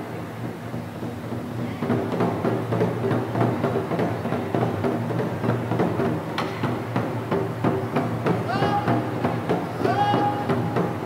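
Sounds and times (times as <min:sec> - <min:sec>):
taiko drums in driving rhythm: 0:00.7 - 0:11.0.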